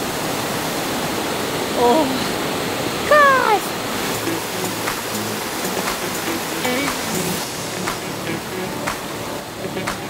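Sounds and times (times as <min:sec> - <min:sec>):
stream rushing over rocks: 0:00.0 - 0:10.0
person speaking: 0:03.0 - 0:08.7.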